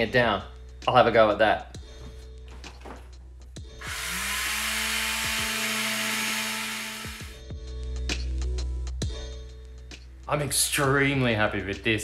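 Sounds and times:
electric sander on wood: 3.8s - 7.4s.

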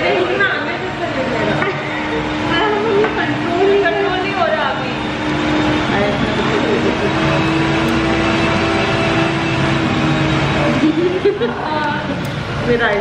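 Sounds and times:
indistinct voices chattering: 0.0s - 13.0s
steady low hum: 0.0s - 13.0s.

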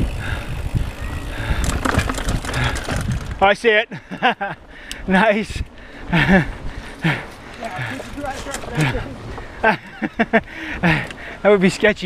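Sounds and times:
bike knocking and rattling: 0.0s - 3.6s, 7.1s - 10.2s
bike tyres rumbling on dirt: 0.0s - 3.6s, 6.2s - 9.7s.

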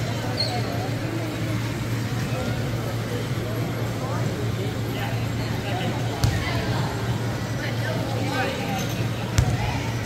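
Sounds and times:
steady low hum: 0.0s - 10.0s
ball smacking on hardwood court: 6.2s - 6.5s, 9.4s - 9.7s.

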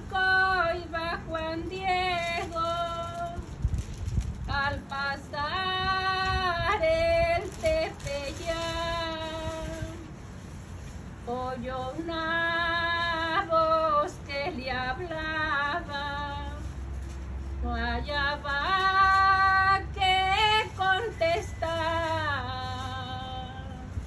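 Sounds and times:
woman singing: 0.0s - 3.5s, 4.5s - 10.0s, 11.3s - 16.6s, 17.6s - 23.9s.

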